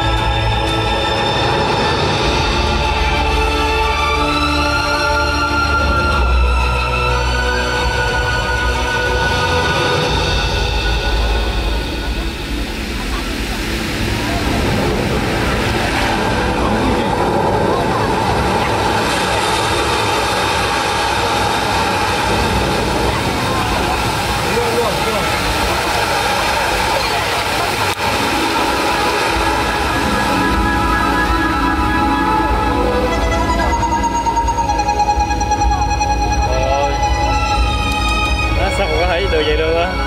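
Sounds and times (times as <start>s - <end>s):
deep rumbling effects: 0.0s - 40.0s
indistinct voices: 0.0s - 40.0s
music over loudspeakers: 27.6s - 40.0s.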